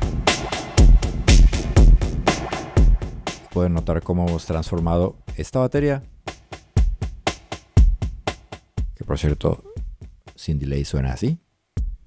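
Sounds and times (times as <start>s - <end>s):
deep kick drum: 0.0s - 4.0s, 4.6s - 9.0s, 9.7s - 10.3s, 11.8s - 12.0s
distorted drum loop: 0.0s - 10.5s, 11.8s - 12.0s.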